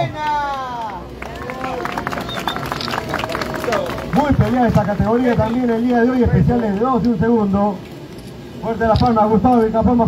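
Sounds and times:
crowd clapping: 0.0s - 6.6s.

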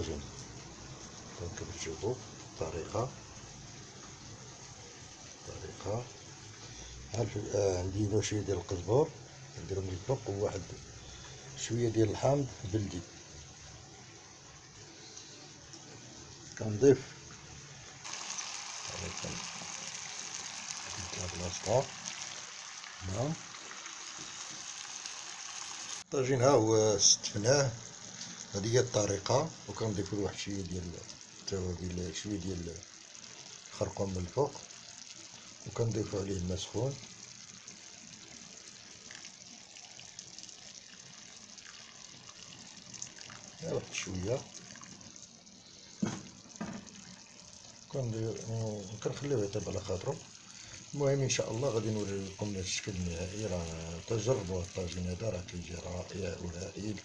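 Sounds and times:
stew simmering hiss: 0.0s - 57.0s.

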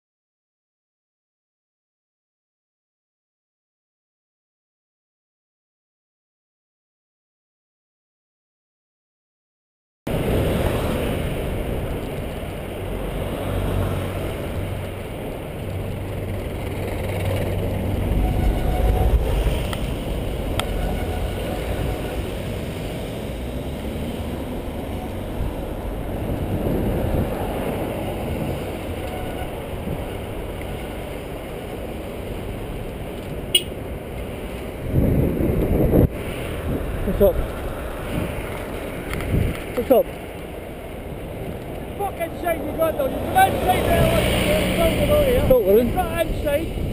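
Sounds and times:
road traffic rumble: 10.1s - 46.9s.

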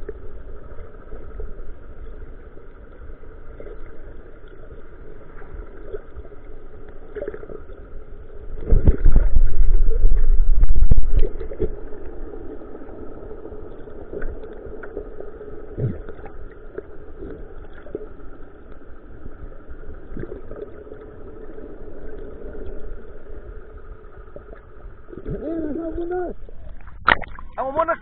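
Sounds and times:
underwater engine hum: 0.0s - 28.0s.

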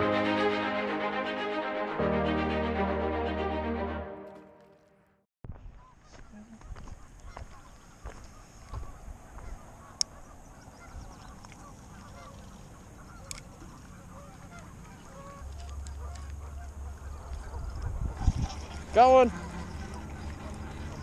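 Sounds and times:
waterfowl honking: 5.8s - 21.0s.

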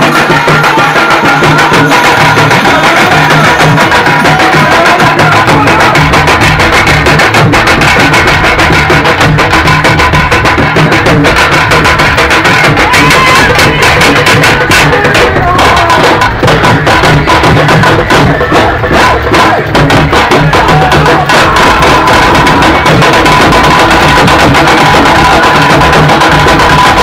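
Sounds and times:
loud music with fast drum beat: 0.0s - 27.0s.

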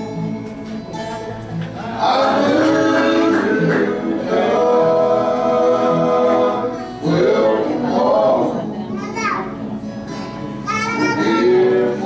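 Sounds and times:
acoustic guitar: 0.0s - 12.0s
male group singing gospel: 1.8s - 9.0s, 11.0s - 12.0s.

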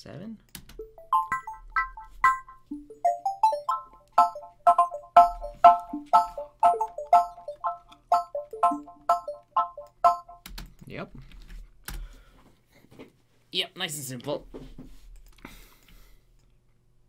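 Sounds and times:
plucked synth melody: 0.8s - 10.5s.

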